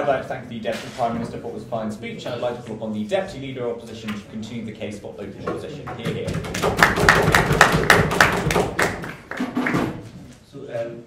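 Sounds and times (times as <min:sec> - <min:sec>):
audience applause: 0:06.5 - 0:10.0.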